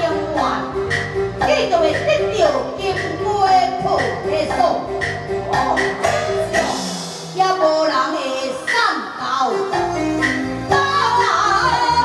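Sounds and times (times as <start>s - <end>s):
instrumental accompaniment: 0.0s - 12.0s
opera singing into a microphone: 10.7s - 12.0s.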